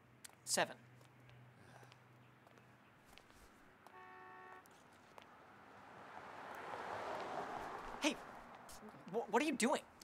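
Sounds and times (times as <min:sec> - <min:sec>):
car approaching: 0:04.7 - 0:09.2.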